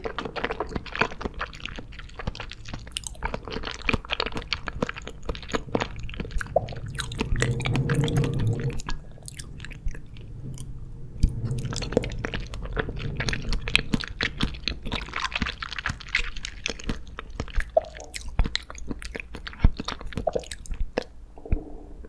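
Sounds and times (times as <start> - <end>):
sticky mouth clicks: 0.0 - 10.7, 11.3 - 21.8
wet chewing of jelly candy: 0.0 - 21.7.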